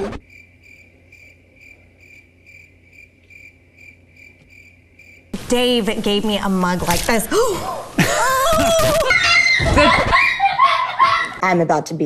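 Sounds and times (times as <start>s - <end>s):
cricket chirping: 0.2s - 5.4s.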